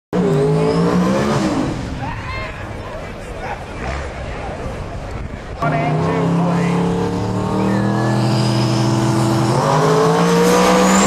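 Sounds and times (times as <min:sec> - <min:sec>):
race car engine revving: 0:00.2 - 0:02.0, 0:05.6 - 0:11.0.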